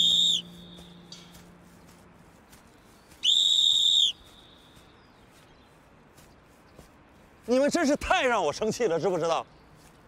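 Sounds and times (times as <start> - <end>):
sports whistle blast: 0.0 - 1.0, 3.2 - 4.2.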